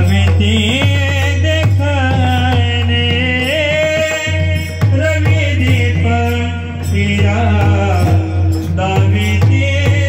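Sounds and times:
drum strokes: 0.0s - 10.0s
person singing devotional melody: 0.0s - 10.0s.

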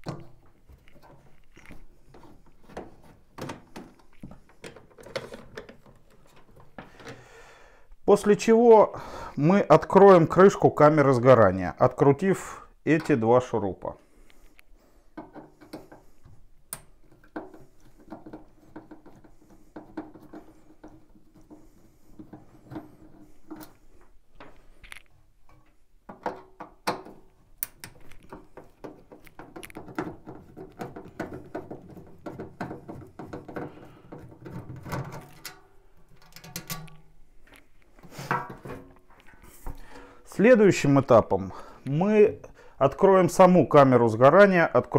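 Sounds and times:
sheet metal knocks and rattles: 17.0s - 23.7s, 28.3s - 37.0s.

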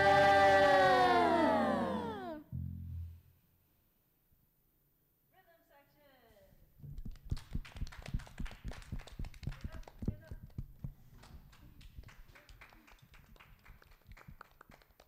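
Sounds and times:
small group clapping: 0.0s - 2.4s, 7.0s - 15.0s.

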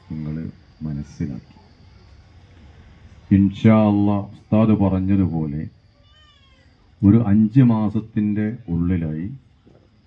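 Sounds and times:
faint high falling cry: 6.0s - 7.0s.

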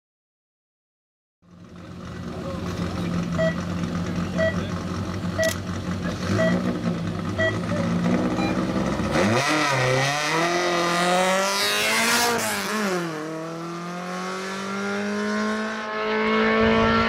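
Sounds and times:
race car engine running: 1.5s - 15.6s
timing beeper short beeps: 3.4s - 3.6s, 4.4s - 4.6s, 6.3s - 6.6s, 7.4s - 8.7s.

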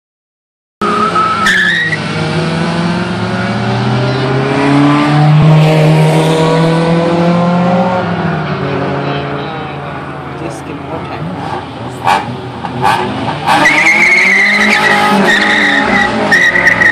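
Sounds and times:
tires squealing: 0.8s - 2.1s, 11.2s - 16.9s
car engines revving hard: 0.8s - 16.9s.

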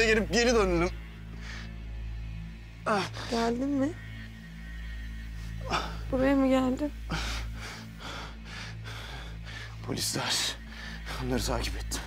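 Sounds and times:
man breathing heavily: 1.2s - 3.3s, 7.0s - 9.9s, 10.5s - 11.3s.

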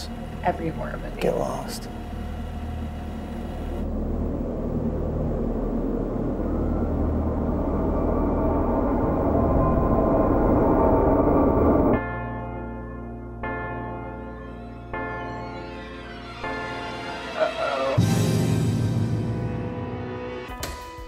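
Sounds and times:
steady hum: 0.0s - 12.0s
low rumbling drone: 0.0s - 20.4s.

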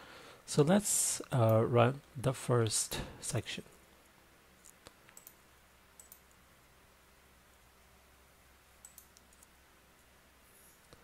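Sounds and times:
faint computer clicks: 4.6s - 5.4s, 6.0s - 6.4s, 8.8s - 9.6s.

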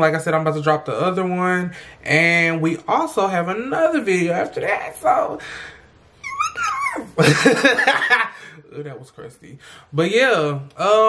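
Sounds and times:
man squealing: 6.2s - 7.2s.

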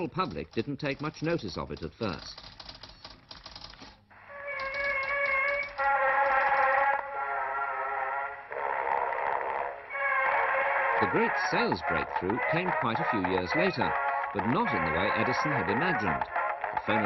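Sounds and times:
typewriter keys clattering: 0.0s - 4.0s, 4.6s - 6.7s.

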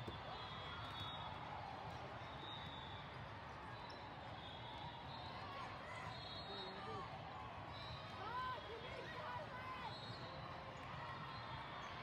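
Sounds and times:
many distant voices: 5.4s - 12.0s.

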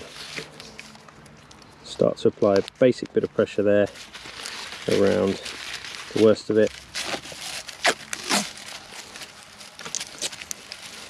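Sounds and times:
tape handling: 0.0s - 1.8s, 2.4s - 11.0s
tape peeling off roll: 3.9s - 11.0s.

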